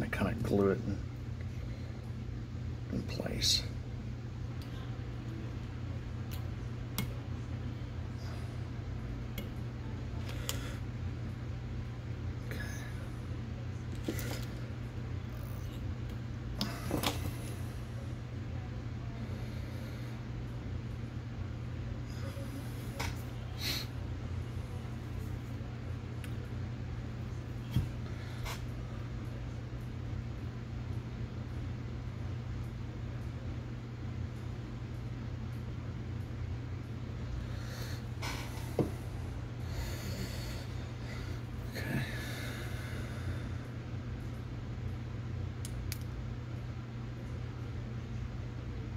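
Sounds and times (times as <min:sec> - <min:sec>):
steady low hum: 0:00.0 - 0:48.9.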